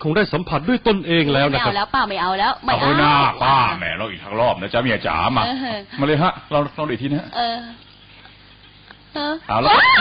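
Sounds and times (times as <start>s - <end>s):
woman shrieking: 9.6s - 10.0s.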